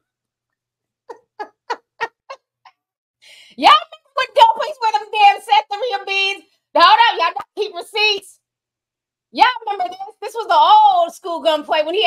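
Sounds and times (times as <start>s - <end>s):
woman laughing: 1.1s - 2.4s.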